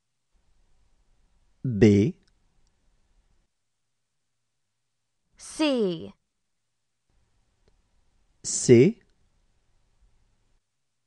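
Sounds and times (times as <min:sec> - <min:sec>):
voice pronouncing letter: 0:01.7 - 0:02.2, 0:05.4 - 0:06.1.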